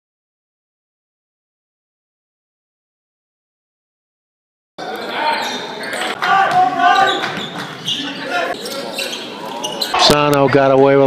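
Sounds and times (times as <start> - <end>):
voices in hall: 4.8 - 11.0.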